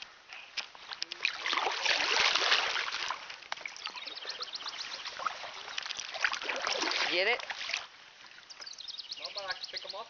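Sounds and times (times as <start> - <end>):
water splashing and trickling: 0.0 - 10.0.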